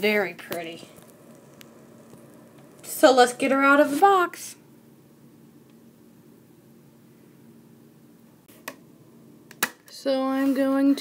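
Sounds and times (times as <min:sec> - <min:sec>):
faint steady hiss: 0:00.0 - 0:11.0
girl's voice: 0:02.8 - 0:04.6, 0:09.9 - 0:11.0.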